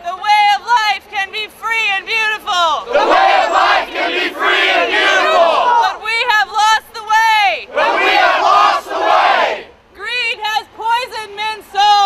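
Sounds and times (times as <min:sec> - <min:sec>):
crowd shouting in unison: 0:02.8 - 0:06.0, 0:07.7 - 0:09.7.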